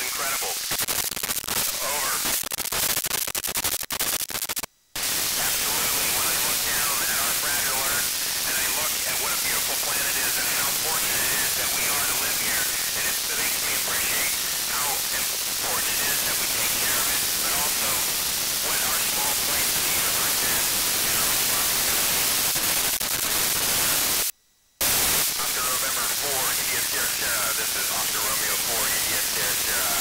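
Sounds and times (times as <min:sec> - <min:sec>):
faint garbled radio voice: 0:00.0 - 0:00.8, 0:01.6 - 0:02.3, 0:05.0 - 0:22.2, 0:25.3 - 0:30.0
radio static hiss: 0:00.0 - 0:30.0.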